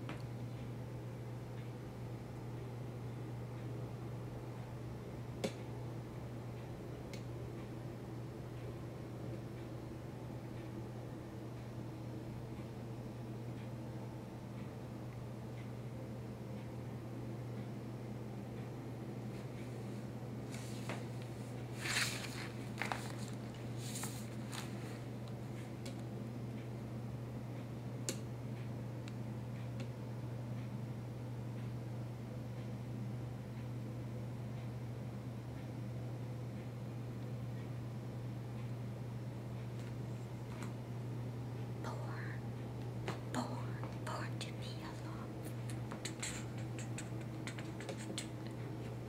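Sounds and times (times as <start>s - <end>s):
steady low hum: 0.0s - 49.0s
book pages rustling: 21.7s - 25.0s
woman whispering: 41.8s - 42.5s, 43.2s - 48.5s.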